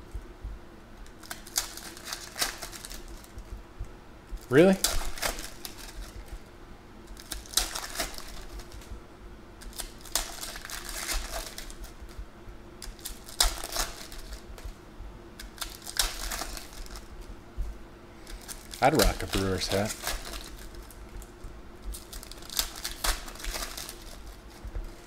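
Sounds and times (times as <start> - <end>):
foil wrappers crinkling and tearing: 1.0 - 3.5, 4.4 - 6.4, 7.0 - 8.9, 9.6 - 12.2, 12.8 - 14.6, 15.4 - 17.3, 18.2 - 25.0
cards clicking and slapping: 1.1 - 3.4, 7.1 - 8.9, 9.6 - 12.2, 12.8 - 14.7, 15.4 - 17.1, 18.2 - 25.0.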